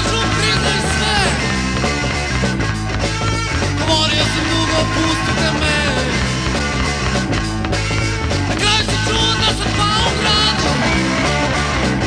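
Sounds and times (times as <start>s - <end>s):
garage rock band playing: 0.0s - 12.0s.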